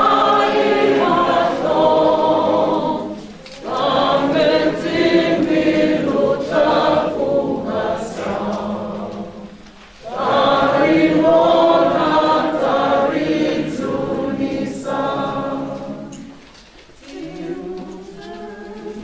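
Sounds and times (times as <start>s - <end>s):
group singing a hymn: 0.0s - 19.0s.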